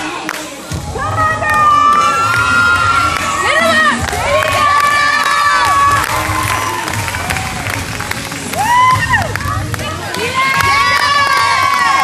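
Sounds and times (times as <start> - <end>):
children shouting and cheering: 0.0 - 12.0.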